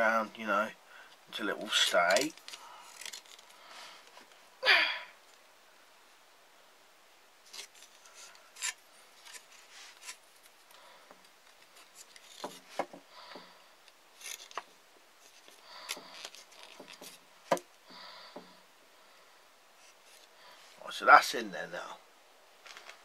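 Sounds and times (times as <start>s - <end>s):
wood clicks and scrapes: 1.5s - 4.4s, 7.4s - 17.6s.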